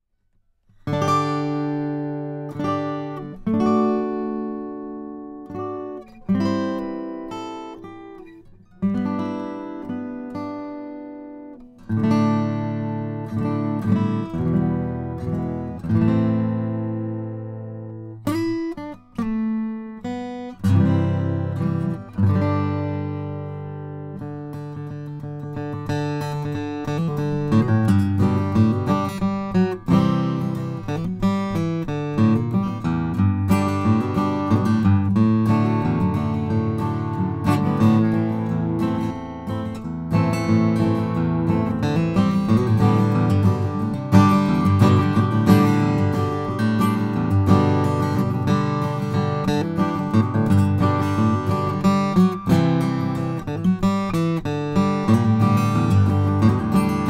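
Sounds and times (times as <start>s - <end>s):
acoustic guitar picked notes and chords: 0.2s - 57.0s.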